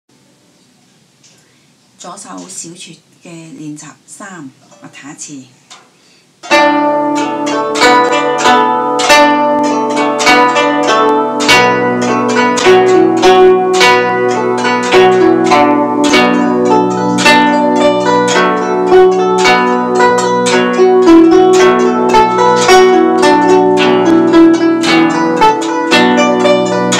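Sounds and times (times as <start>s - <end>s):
plucked zither melody: 6.4s - 26.9s.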